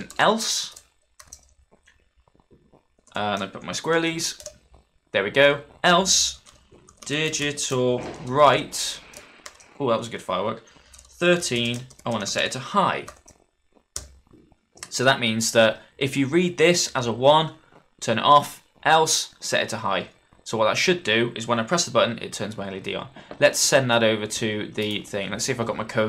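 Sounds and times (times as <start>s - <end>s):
computer keyboard typing: 0.0s - 1.6s, 3.0s - 4.6s, 6.0s - 7.9s, 8.9s - 9.7s, 10.9s - 13.4s, 14.0s - 14.2s.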